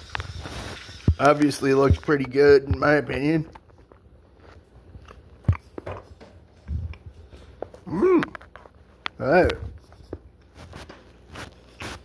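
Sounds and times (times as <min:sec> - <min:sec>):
biting and chewing: 0:03.5 - 0:07.2.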